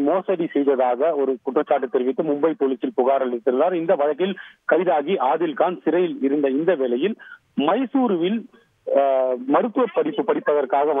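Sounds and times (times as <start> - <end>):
man talking over telephone: 0.0 - 11.0.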